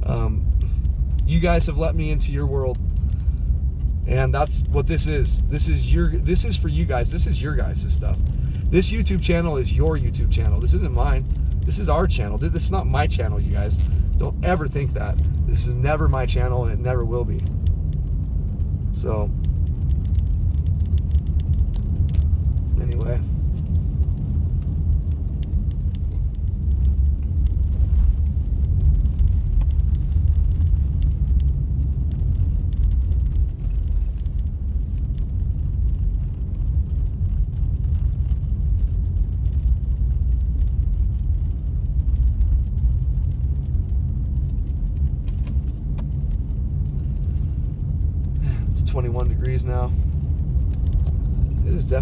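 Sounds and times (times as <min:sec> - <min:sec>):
car driving on snow from inside: 0:00.0 - 0:52.0.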